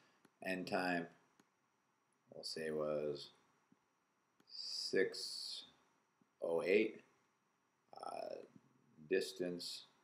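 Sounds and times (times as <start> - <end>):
man saying uh: 4.6 - 5.6, 8.0 - 8.4.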